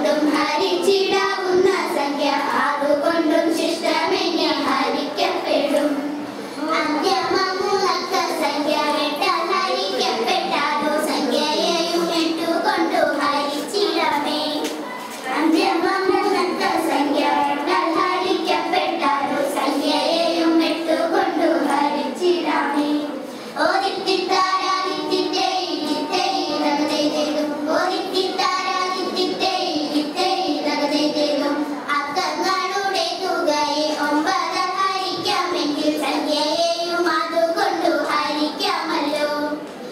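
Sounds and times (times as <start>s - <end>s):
girls singing into a microphone: 0.0s - 39.9s.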